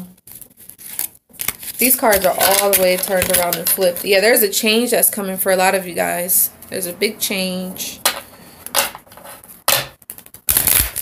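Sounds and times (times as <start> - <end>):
cards being shuffled: 0.3 - 4.1.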